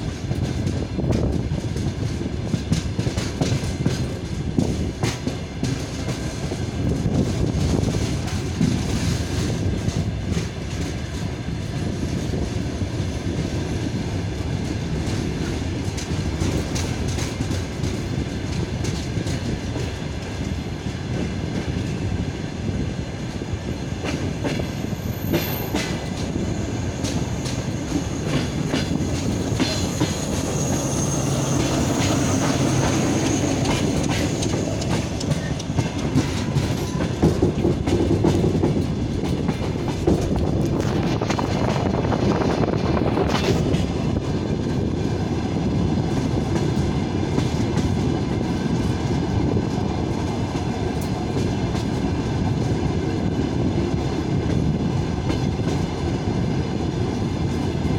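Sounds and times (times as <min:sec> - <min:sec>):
continuous train rumble: 0:00.0 - 0:57.9
diesel locomotive engine drone: 0:00.0 - 0:57.9
train wheels clicking over rail joints: 0:00.0 - 0:57.9.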